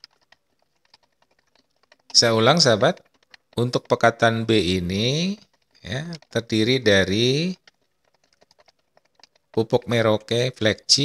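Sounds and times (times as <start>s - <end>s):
wooden stick tapping plastic jug: 0.0s - 11.0s.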